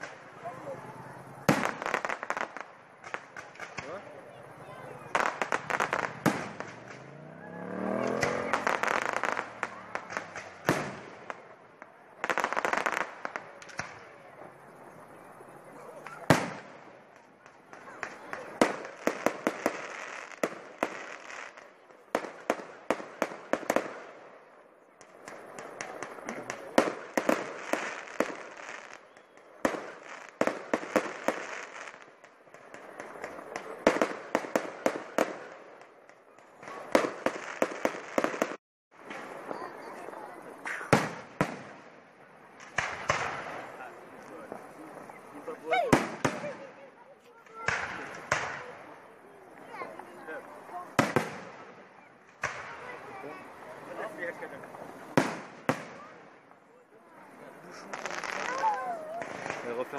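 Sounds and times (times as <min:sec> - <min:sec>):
fireworks bangs: 0:00.0 - 0:59.9
fireworks crackling: 0:00.0 - 0:59.9.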